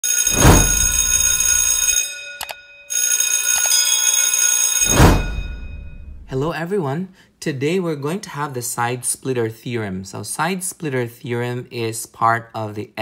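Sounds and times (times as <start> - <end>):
electric bell ringing: 0.0 - 6.4
whoosh: 0.3 - 1.0, 4.9 - 6.5.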